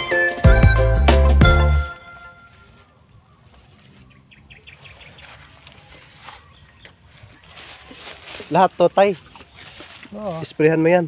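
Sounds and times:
small bird chirping: 2.7s - 10.4s.

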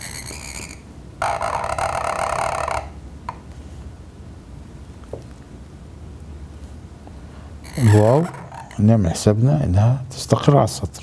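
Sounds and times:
pen nib scratching paper: 7.7s - 8.8s.

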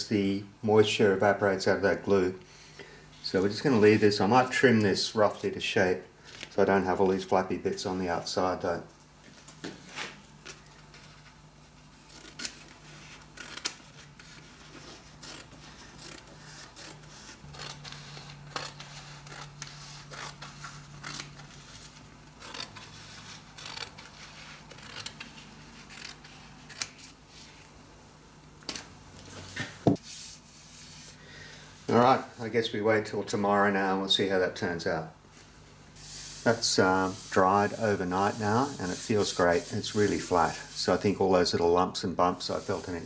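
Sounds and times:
paper rubbing: 11.0s - 27.7s, 36.0s - 41.1s
scissors cutting wallpaper: 12.0s - 27.2s.

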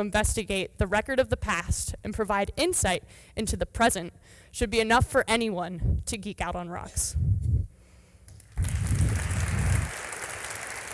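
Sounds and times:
audience applauding: 8.5s - 10.9s.

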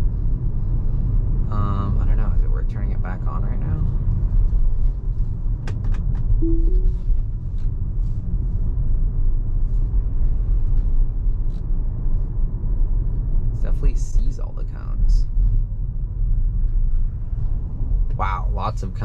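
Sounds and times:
road and tyre rumble: 0.0s - 19.0s.

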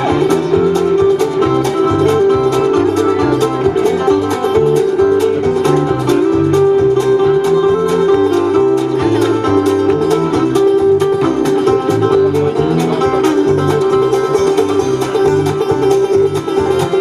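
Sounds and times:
acoustic guitar: 0.0s - 17.0s
banjo: 0.0s - 17.0s
fiddle: 0.0s - 17.0s
upright bass: 0.0s - 17.0s.

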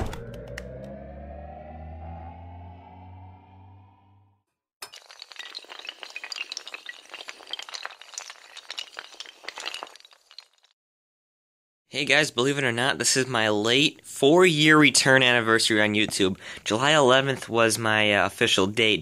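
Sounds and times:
low hum: 0.0s - 4.4s
synthesized rising swell: 0.0s - 4.4s
small hard pieces clattering: 4.8s - 10.7s.

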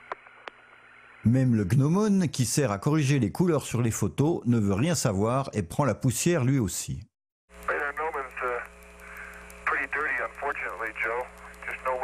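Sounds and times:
faint rapid ticking: 7.5s - 12.0s
steady hum: 7.5s - 12.0s
man speaking over radio: 7.7s - 8.7s, 9.6s - 12.0s.

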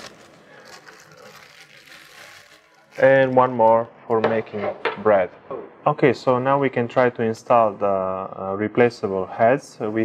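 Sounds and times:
plastic bag rustling: 0.0s - 3.4s.

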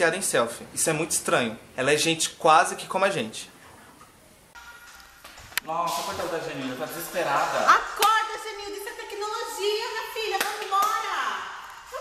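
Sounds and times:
woman talking animatedly: 7.6s - 12.0s.

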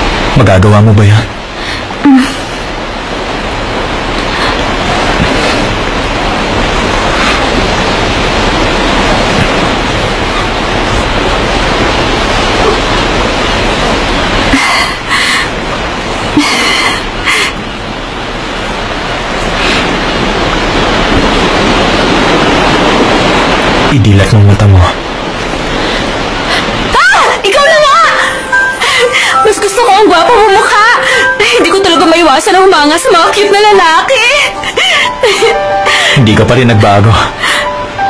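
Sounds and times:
sea surf breaking: 0.0s - 38.0s.

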